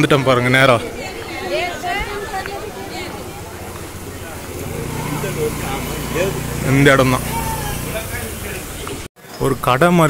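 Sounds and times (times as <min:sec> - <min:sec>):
passers-by chatting: 0:00.0 - 0:09.1
vehicle engine humming: 0:01.6 - 0:09.1.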